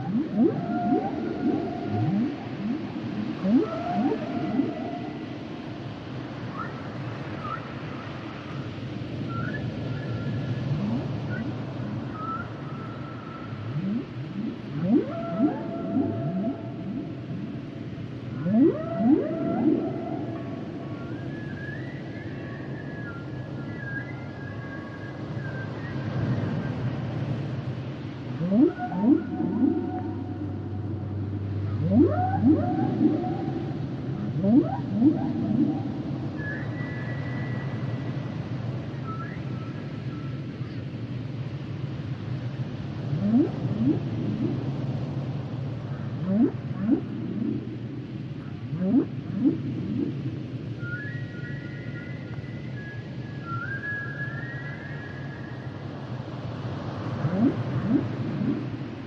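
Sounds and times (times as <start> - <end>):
whale song whoops: 0.0 - 5.8, 9.3 - 26.1, 28.4 - 38.3, 43.1 - 44.7, 46.2 - 47.8, 48.7 - 55.9, 57.2 - 58.9
steady background noise: 0.0 - 59.0.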